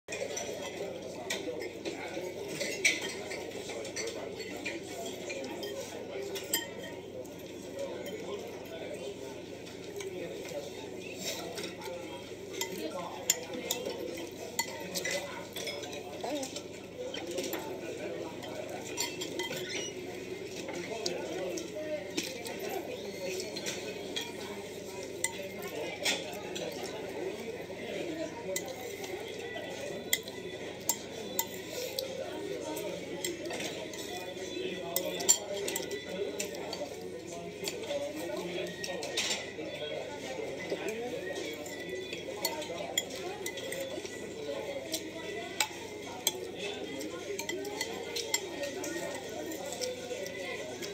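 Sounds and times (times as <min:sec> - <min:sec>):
cutlery clinking on plates: 0:00.1 - 0:08.9, 0:09.6 - 0:50.9
murmur of voices: 0:00.1 - 0:50.9.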